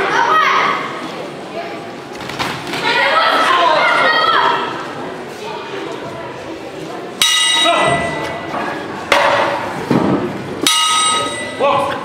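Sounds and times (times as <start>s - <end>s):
voices in a hall: 0.0s - 12.0s
boxing ring bell ringing: 7.2s - 8.4s, 10.6s - 11.7s.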